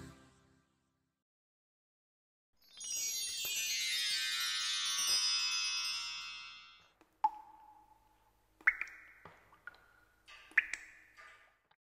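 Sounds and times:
shimmering chime effect: 0:02.6 - 0:06.8.

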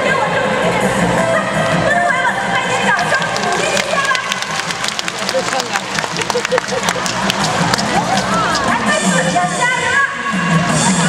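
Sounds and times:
audience noise: 0:02.4 - 0:11.0
presenter talking: 0:02.6 - 0:09.3
sharp claps: 0:02.8 - 0:09.1.

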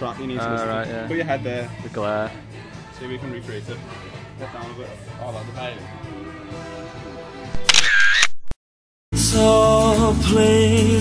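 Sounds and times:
faint background music: 0:00.0 - 0:07.5
camera shutter: 0:07.6 - 0:08.6.

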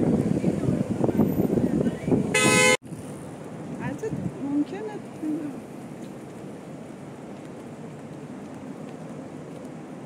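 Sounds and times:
street noise: 0:00.0 - 0:10.0
car horn toot: 0:02.3 - 0:02.8.

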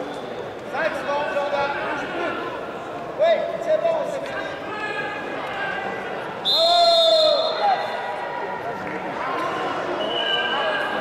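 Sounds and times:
high-pitched whistle: 0:10.0 - 0:10.8.

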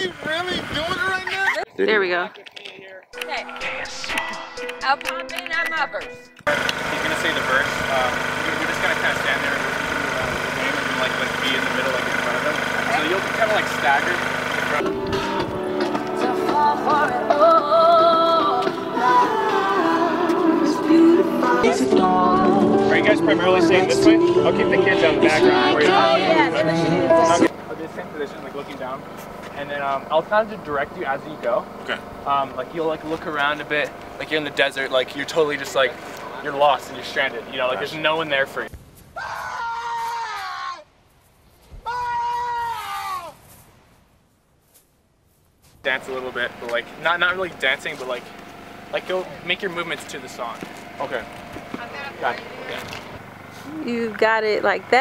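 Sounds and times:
engine-like hum with high whine: 0:00.0 - 0:02.0, 0:06.5 - 0:38.7, 0:45.8 - 0:55.0
music: 0:03.1 - 0:06.5, 0:14.8 - 0:27.5
man shouting long calls: 0:39.2 - 0:40.9, 0:41.8 - 0:43.4.

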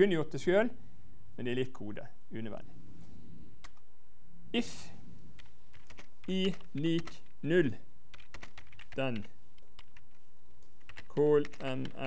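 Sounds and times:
computer keyboard typing: 0:05.4 - 0:07.4, 0:08.1 - 0:10.2, 0:10.8 - 0:12.0
person speaking word: 0:06.2 - 0:07.8, 0:11.1 - 0:12.0.

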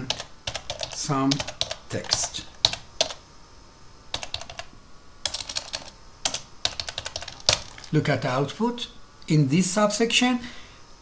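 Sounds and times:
computer keyboard typing: 0:00.0 - 0:03.2, 0:04.1 - 0:08.0.

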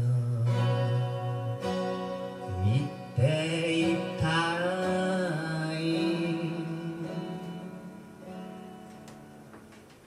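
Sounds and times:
man singing long notes: 0:00.0 - 0:08.2.

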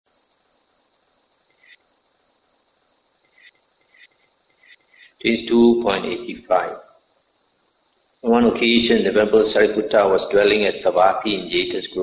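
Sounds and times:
insects trilling: 0:00.1 - 0:12.0.

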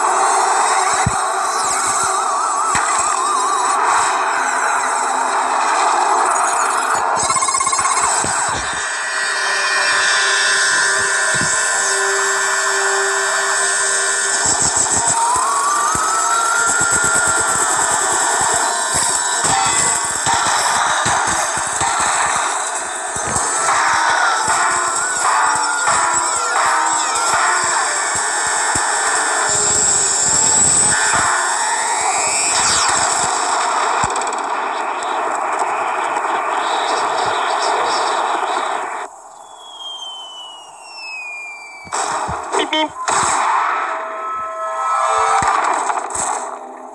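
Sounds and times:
falling whistle: 0:00.1 - 0:05.5, 0:06.1 - 0:20.6, 0:23.6 - 0:33.4, 0:38.9 - 0:45.7
sci-fi energy beam effects: 0:06.3 - 0:34.0
cartoon music: 0:42.5 - 0:43.4.

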